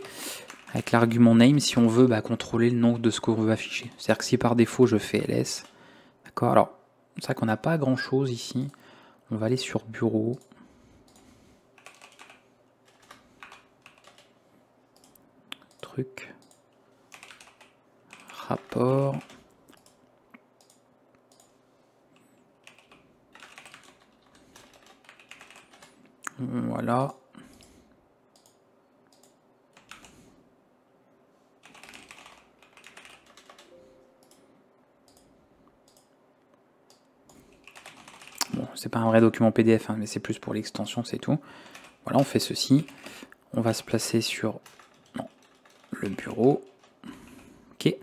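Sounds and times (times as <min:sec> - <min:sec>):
faint keyboard typing: 0:00.0 - 0:05.8, 0:10.2 - 0:30.4, 0:31.6 - 0:38.8, 0:41.5 - 0:47.9.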